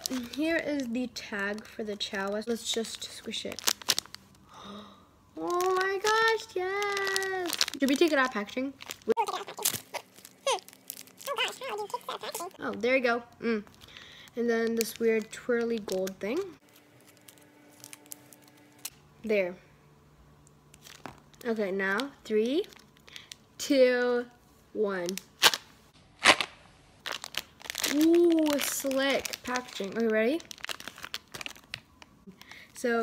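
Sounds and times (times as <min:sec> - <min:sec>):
plastic packaging crinkling: 0:00.0 - 0:04.4, 0:05.4 - 0:12.9, 0:13.6 - 0:18.9, 0:20.7 - 0:23.4, 0:26.2 - 0:32.6.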